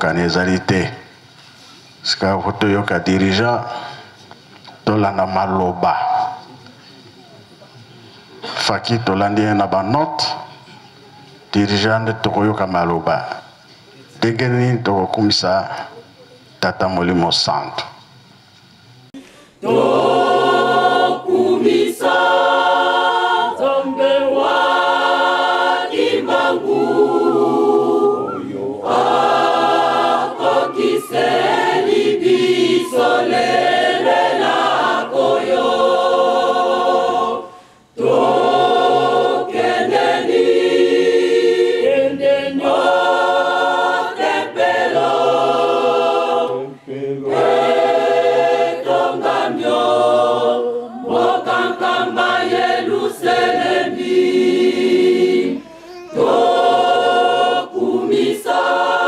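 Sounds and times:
choir singing: 0:19.6 - 0:59.0.

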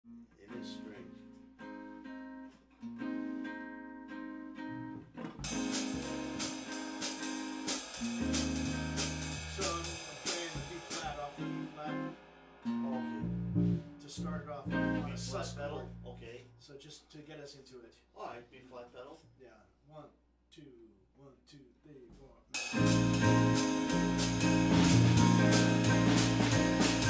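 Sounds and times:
archtop guitar chords: 0:00.1 - 0:16.4, 0:22.6 - 0:27.0
electric bass notes: 0:04.7 - 0:10.2, 0:12.8 - 0:16.4, 0:22.7 - 0:27.0
drum kit cymbal strikes: 0:05.4 - 0:15.7, 0:22.6 - 0:27.0.

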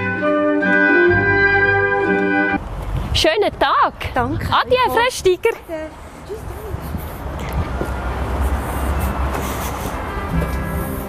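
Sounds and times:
street noise rumble and hiss: 0:00.0 - 0:11.0.

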